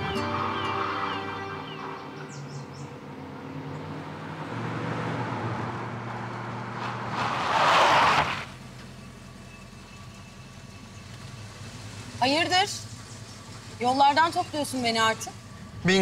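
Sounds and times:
soundtrack music: 0.0 - 2.2
car engine approaching: 0.0 - 16.0.

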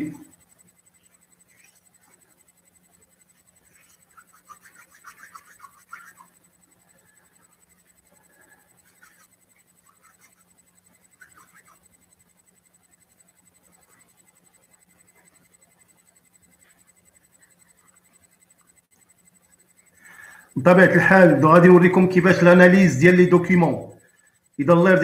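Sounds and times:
faint low hum: 0.0 - 25.0
pen scratching on paper: 0.4 - 8.0, 8.7 - 18.6.

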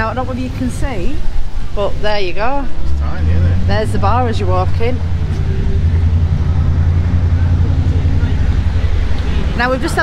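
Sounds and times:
engine idling rumble: 0.0 - 10.0.

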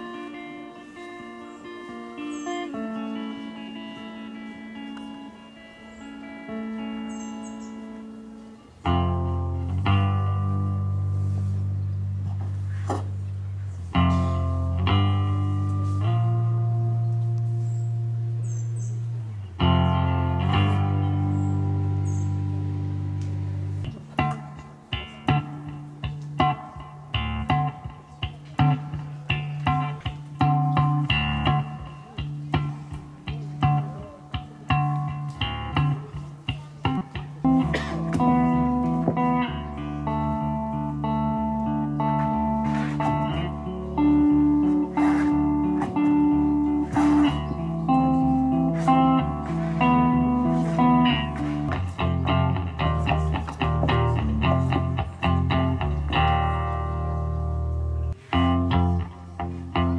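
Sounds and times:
electric guitar through amplifier: 0.0 - 59.9.

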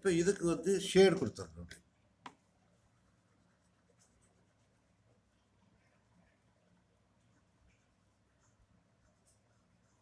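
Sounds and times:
pencil scratching on paper: 2.8 - 5.0, 7.2 - 10.0.

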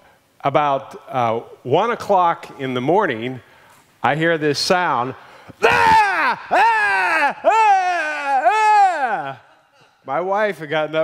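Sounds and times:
man imitating high wails: 5.6 - 9.6.

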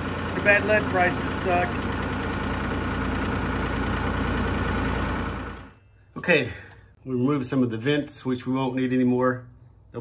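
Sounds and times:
tractor engine idling: 0.0 - 6.8.

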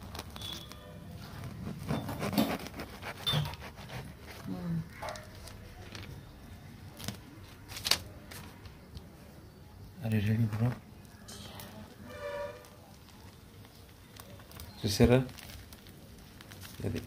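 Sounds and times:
knife scraping fruit skin: 1.5 - 4.6.

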